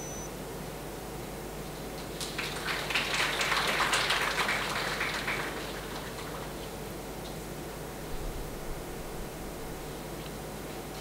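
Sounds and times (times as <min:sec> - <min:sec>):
audience clapping: 0:02.1 - 0:06.8.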